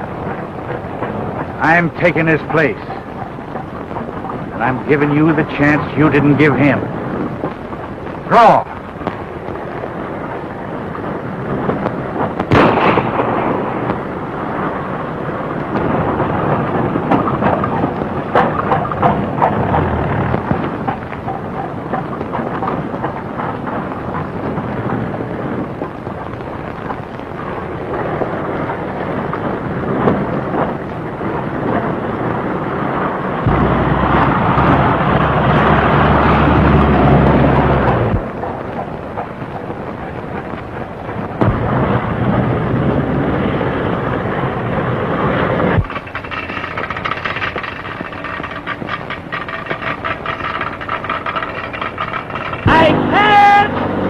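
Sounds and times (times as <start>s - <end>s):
crackly film soundtrack hiss: 0.0s - 54.0s
low engine drone: 0.0s - 54.0s
gunshot: 12.2s - 14.0s, 33.4s - 34.8s, 41.4s - 42.1s.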